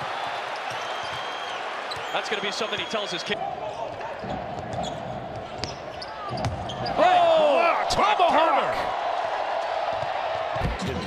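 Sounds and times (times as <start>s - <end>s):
shoe squeaks: 0.6s - 3.0s, 3.7s - 7.0s.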